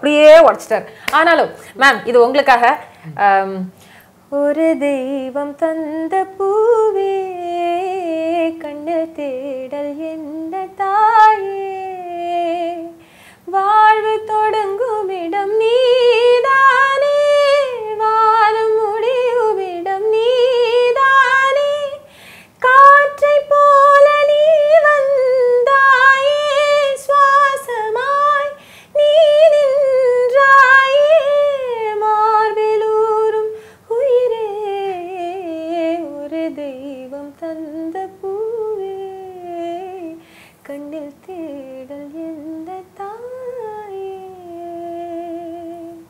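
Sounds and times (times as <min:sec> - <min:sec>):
woman singing unaccompanied: 0:04.3 - 0:46.0.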